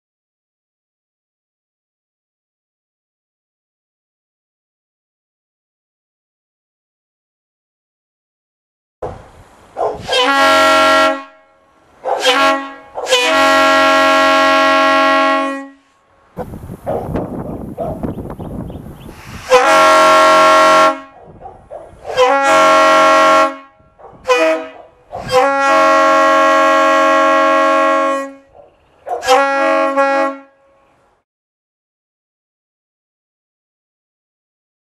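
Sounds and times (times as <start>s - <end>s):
rough air noise: 9.0s - 27.6s
locomotive air horn blasts: 9.9s - 16.2s, 19.1s - 21.2s, 22.0s - 31.0s.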